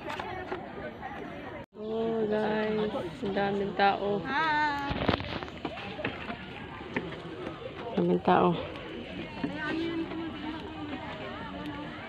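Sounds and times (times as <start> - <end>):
faint voices of passers-by: 0.0 - 12.0.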